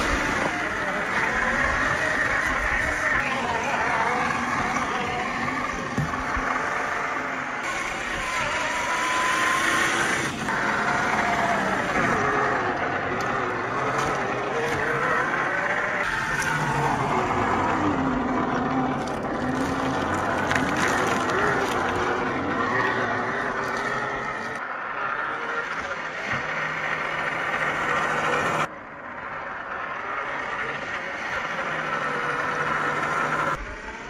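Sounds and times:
electric motor and gearbox whining: 0.0 - 34.0.

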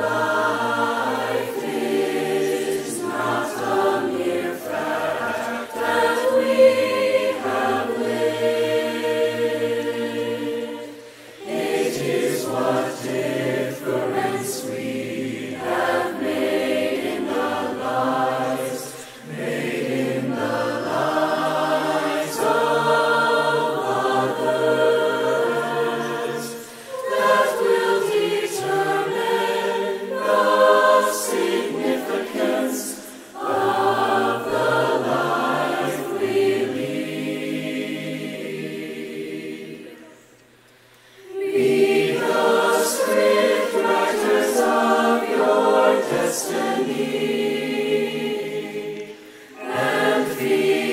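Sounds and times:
choir singing a cappella: 0.0 - 50.9.

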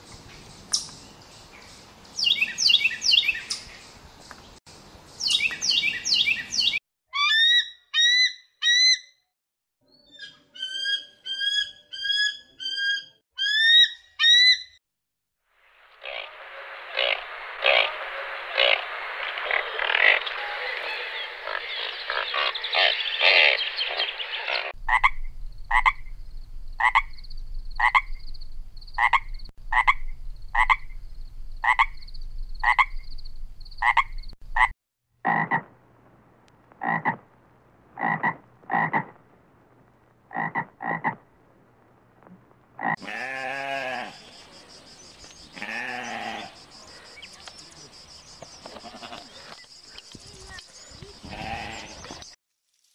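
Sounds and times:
frogs croaking: 15.9 - 35.7, 38.0 - 39.2, 40.3 - 41.2, 42.8 - 52.2
sheep bleating: 43.0 - 44.2, 45.6 - 46.6, 48.6 - 49.4, 51.2 - 52.0.

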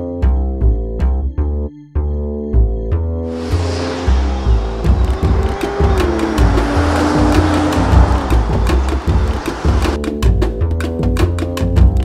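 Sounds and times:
car engine passing by: 3.3 - 10.0
car tyres hissing on wet road: 3.3 - 10.0
music with bass line and beat: 4.8 - 12.0.

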